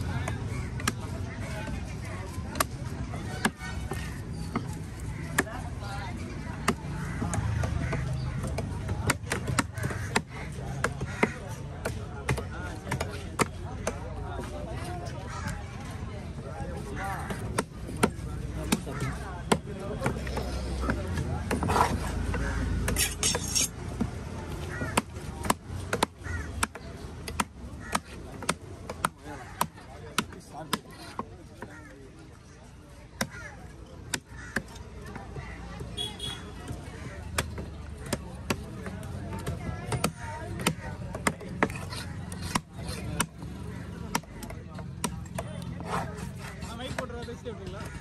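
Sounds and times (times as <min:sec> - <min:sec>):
cleaver chopping on wooden block: 0:06.4 - 0:14.0, 0:17.2 - 0:31.8, 0:33.2 - 0:35.2, 0:35.8 - 0:47.1
knife chopping on wooden block: 0:36.8 - 0:47.0.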